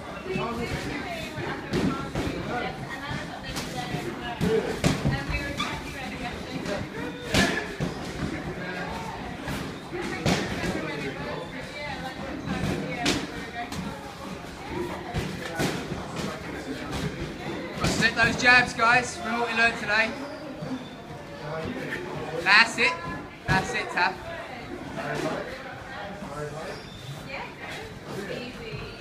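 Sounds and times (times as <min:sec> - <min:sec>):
background talk in gym: 0:00.0 - 0:29.0
footwork on ring canvas: 0:00.2 - 0:24.0.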